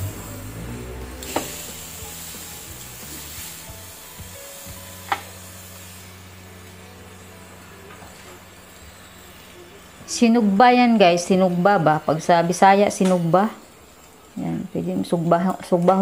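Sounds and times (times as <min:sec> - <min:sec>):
soft background music: 0:00.0 - 0:16.0
squid sizzling on grill pan: 0:00.0 - 0:16.0
metal tongs clicking on pan: 0:12.9 - 0:13.4.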